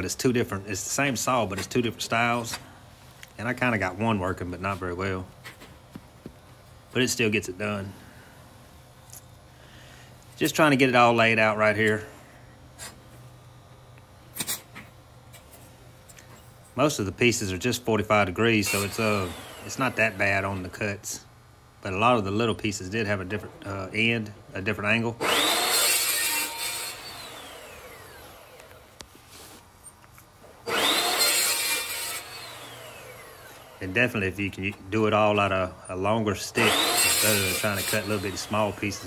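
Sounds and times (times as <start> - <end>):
chop saw cutting metal: 18.6 - 20.8, 25.2 - 28.6, 30.6 - 33.8, 36.6 - 39.0.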